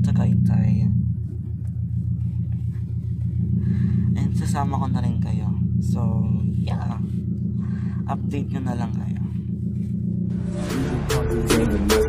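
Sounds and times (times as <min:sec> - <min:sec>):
car engine rumbling: 0:00.0 - 0:12.0.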